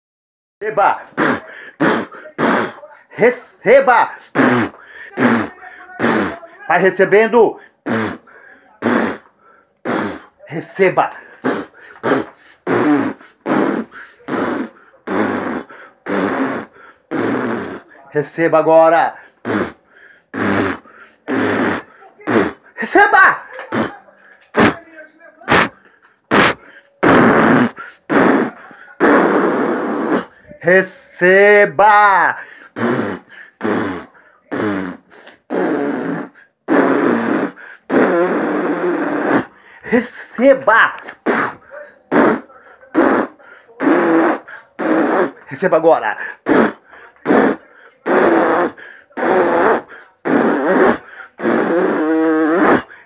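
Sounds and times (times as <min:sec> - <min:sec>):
raspy vocal buzz: 0:00.6 - 0:53.0
man blowing into microphone: 0:01.0 - 0:03.3, 0:04.2 - 0:06.4, 0:07.7 - 0:10.4, 0:11.3 - 0:17.9, 0:19.2 - 0:24.8, 0:25.5 - 0:30.9, 0:32.4 - 0:45.5, 0:46.2 - 0:53.0
lips fluttering: 0:01.0 - 0:03.4, 0:04.1 - 0:06.6, 0:07.6 - 0:18.0, 0:19.2 - 0:24.8, 0:25.4 - 0:30.8, 0:32.4 - 0:53.0.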